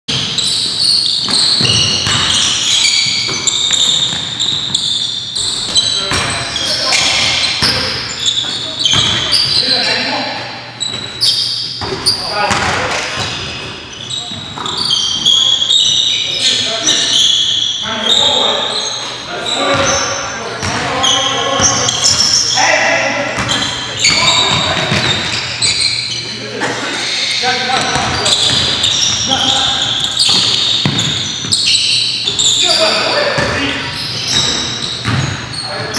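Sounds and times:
players calling out: 0.1s - 35.9s
sneakers squeaking: 0.1s - 35.9s
basketball bouncing on wooden floor: 1.2s - 4.9s, 5.5s - 9.5s, 27.8s - 31.6s, 33.4s - 33.6s, 34.3s - 35.9s.

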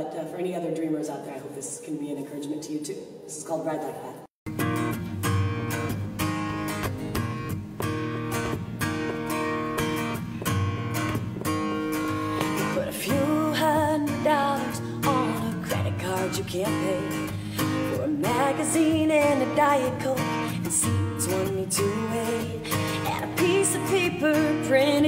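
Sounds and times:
acoustic guitar strumming: 4.5s - 25.0s.

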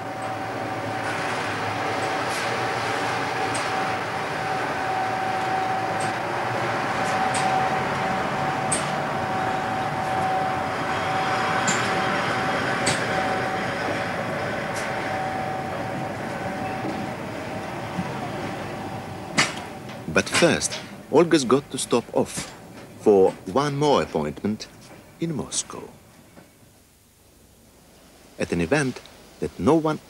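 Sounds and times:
steady hum tone: 0.0s - 23.8s
train rumble and rush: 0.0s - 26.6s.

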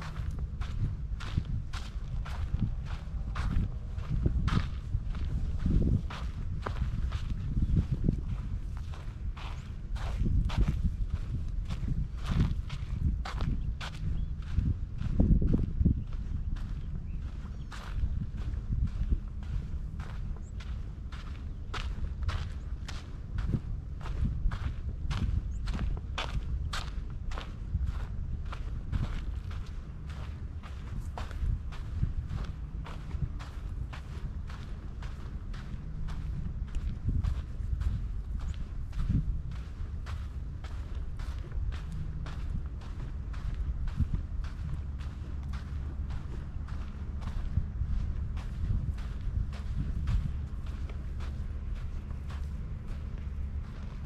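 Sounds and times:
footsteps on sandy dirt trail: 0.0s - 54.0s
low rumble: 0.0s - 54.0s.

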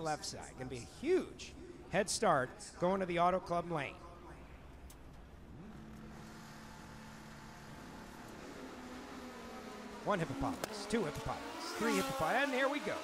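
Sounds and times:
motorcycle engines running faintly: 4.4s - 13.0s
motorcycle engine revving: 5.5s - 13.0s.

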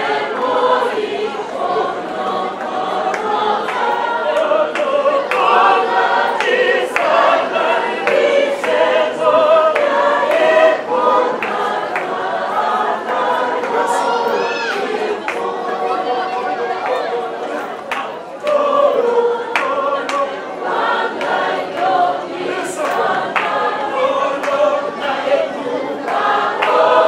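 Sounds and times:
choir singing: 0.0s - 27.0s.

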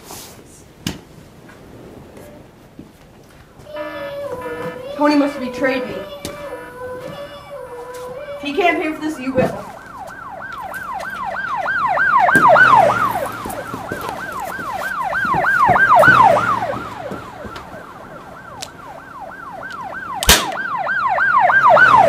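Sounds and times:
emergency siren yelping: 3.7s - 22.0s.

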